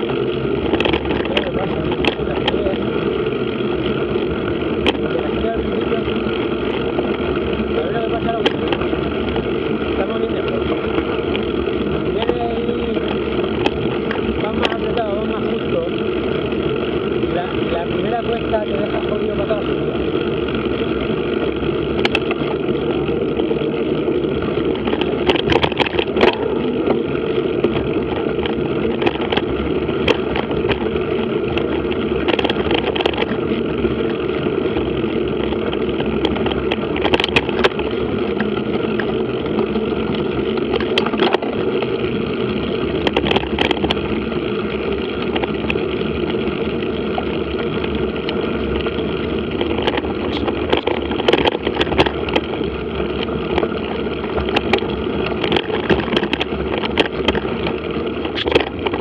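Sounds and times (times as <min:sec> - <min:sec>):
bike clicks and knocks: 0:00.0 - 0:59.0
bike tyres rolling on gravel: 0:00.0 - 0:59.0.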